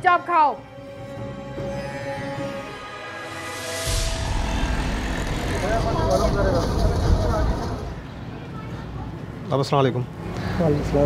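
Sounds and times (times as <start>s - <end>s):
road traffic rumble: 3.5s - 11.0s.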